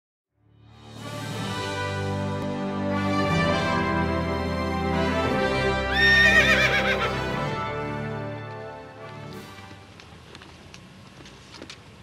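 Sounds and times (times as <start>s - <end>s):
background music: 0.4s - 10.1s
horse whinny: 5.9s - 7.3s.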